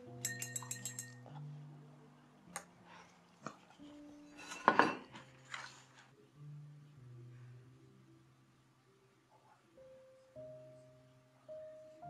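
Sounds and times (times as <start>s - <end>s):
soft background music: 0.0s - 12.0s
light ringing clinks: 0.2s - 1.2s.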